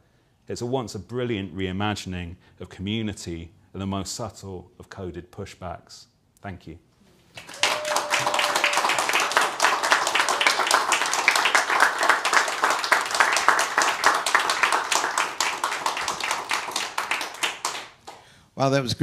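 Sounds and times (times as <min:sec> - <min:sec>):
audience applause: 0:07.4 - 0:18.2.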